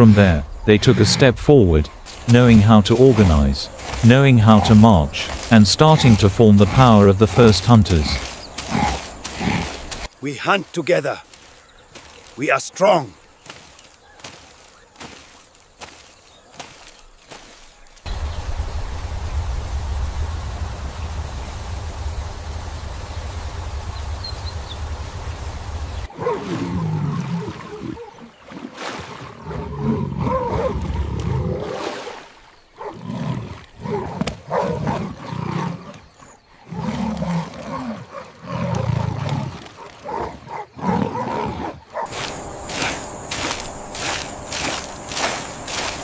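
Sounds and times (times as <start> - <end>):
steady rushing rumbling noise: 18.1 - 26.1, 42.1 - 46.0.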